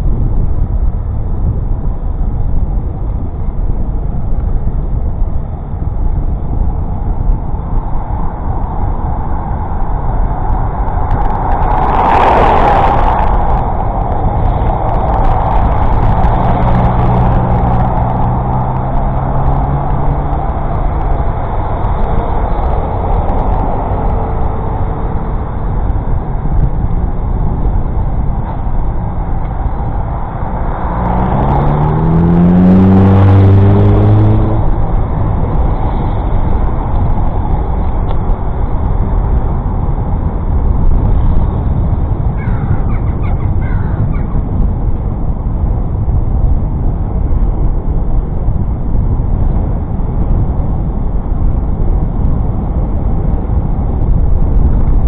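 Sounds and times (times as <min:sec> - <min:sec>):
road noise: 0:00.0 - 0:55.0
wind rushing over microphone: 0:00.0 - 0:55.0
vehicle engines passing: 0:01.0 - 0:55.0
bird calls: 0:42.4 - 0:44.4.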